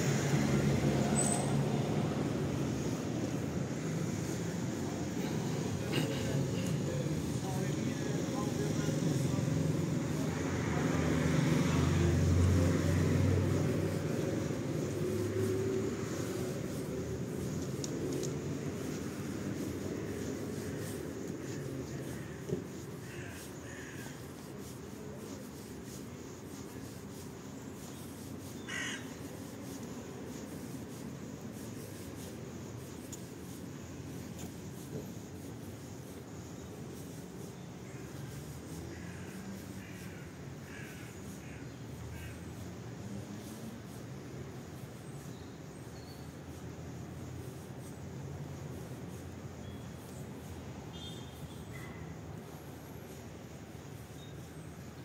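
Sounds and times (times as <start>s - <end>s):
motor vehicle passing: 0.0s - 31.0s
crow cawing: 23.0s - 24.2s, 28.6s - 29.2s, 39.0s - 42.4s.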